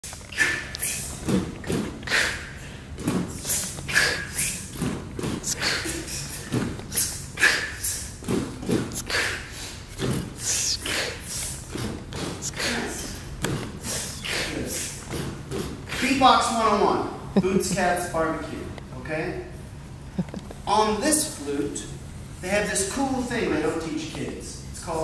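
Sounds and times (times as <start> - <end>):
vocal beatboxing: 0.0 - 16.3.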